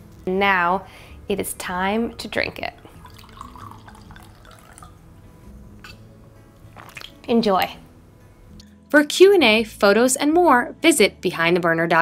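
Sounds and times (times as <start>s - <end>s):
wine pouring into a glass: 1.6s - 5.1s, 6.8s - 7.3s.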